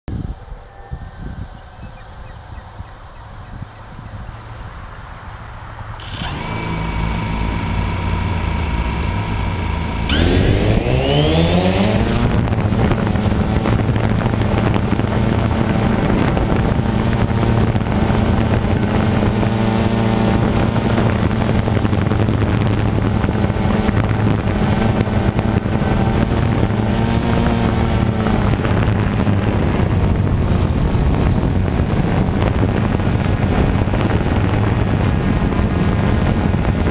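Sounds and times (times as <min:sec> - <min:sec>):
drone motors buzzing: 0:06.0 - 0:31.2
drone motors whining: 0:06.0 - 0:31.2.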